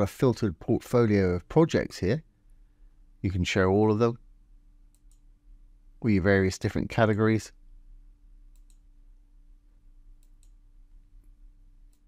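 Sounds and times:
faint steady hum: 0:00.0 - 0:12.0
computer mouse clicks: 0:04.9 - 0:05.3, 0:08.5 - 0:08.9, 0:10.2 - 0:10.6.

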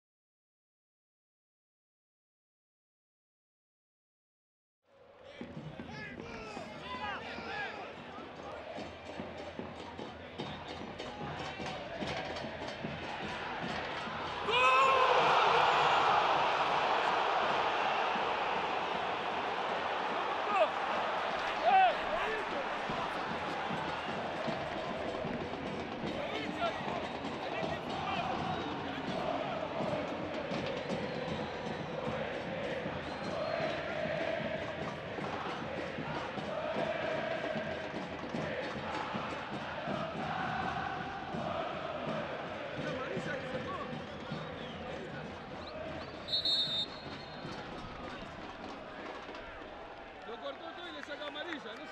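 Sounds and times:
crowd din with voices: 0:05.0 - 0:51.9
stadium crowd cheering: 0:05.0 - 0:51.9.

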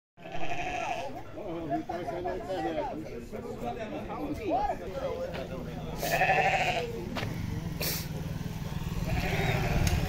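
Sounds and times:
goat bleating: 0:00.2 - 0:01.2, 0:06.0 - 0:07.0, 0:09.0 - 0:10.0
men talking: 0:01.1 - 0:10.0.

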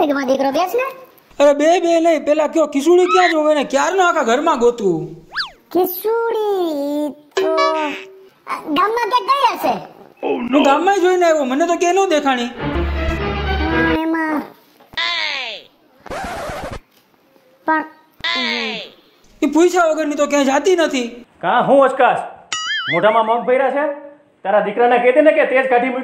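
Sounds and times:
cartoon whistle glide: 0:05.3 - 0:05.6
brief pitched sound: 0:05.3 - 0:05.7
rough scratching noise: 0:16.1 - 0:16.8.

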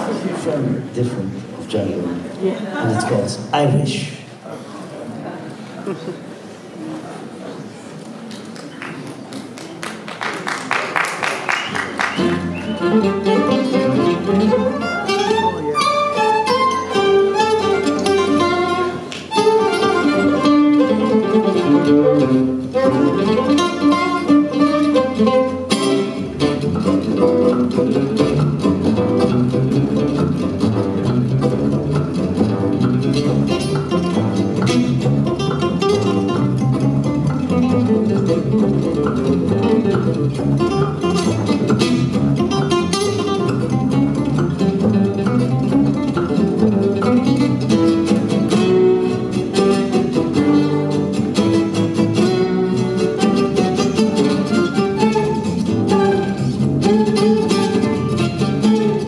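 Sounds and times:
acoustic guitar fast picked melody: 0:11.3 - 0:59.0
jazz band accompanying: 0:11.5 - 0:59.0.

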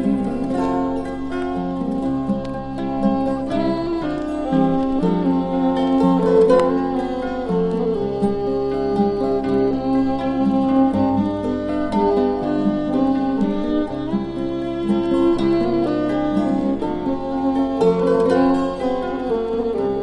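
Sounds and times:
acoustic guitar playing: 0:00.0 - 0:20.0
fiddle playing: 0:00.0 - 0:20.0.

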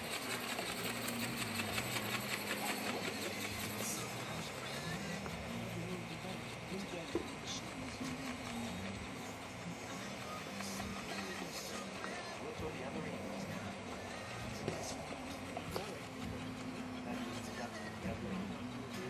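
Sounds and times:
small electric motor whine: 0:00.0 - 0:19.0.

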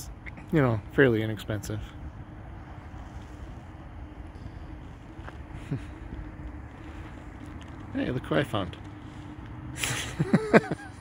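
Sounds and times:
wind rumbling on microphone: 0:00.0 - 0:10.2.

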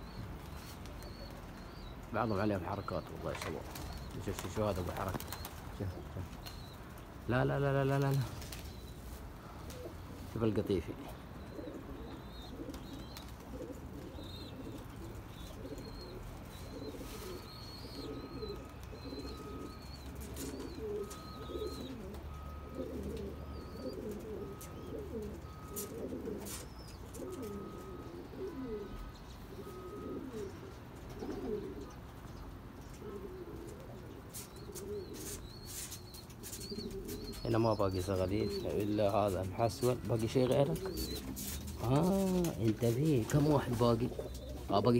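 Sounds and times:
pigeons cooing: 0:00.0 - 0:44.9
small birds chirping: 0:00.0 - 0:44.9.

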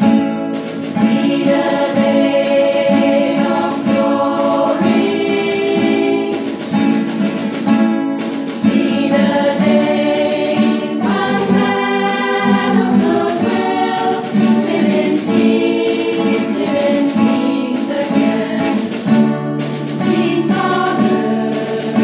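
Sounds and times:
strummed acoustic guitars: 0:00.0 - 0:22.0
women's choir singing: 0:00.8 - 0:07.5, 0:08.4 - 0:22.0.

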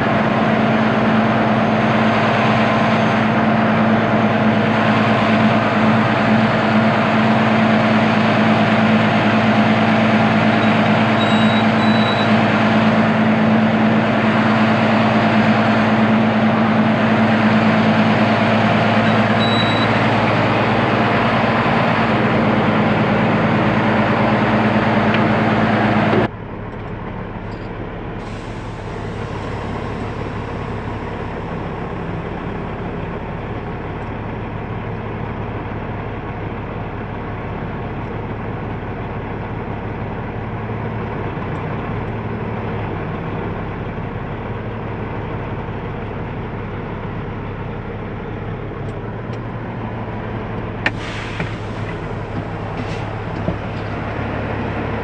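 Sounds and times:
truck diesel engines droning: 0:00.0 - 0:55.0.

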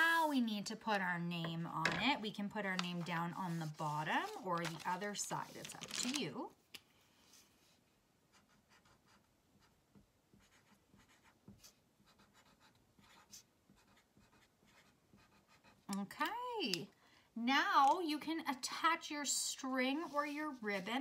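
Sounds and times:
marker writing on paper: 0:08.3 - 0:15.9, 0:19.9 - 0:21.0.

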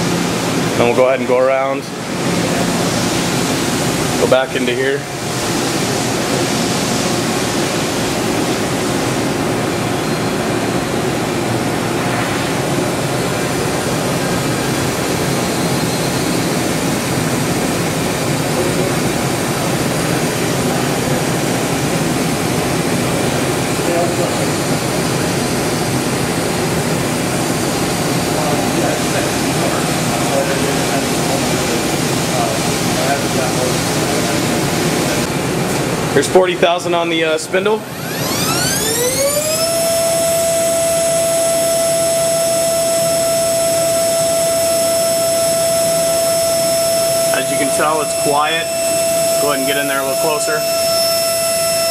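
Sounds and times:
machine spindle whirring: 0:37.4 - 0:51.9.

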